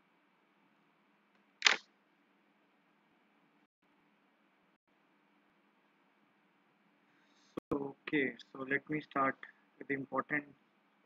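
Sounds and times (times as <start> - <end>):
sharp click: 1.6 - 1.8.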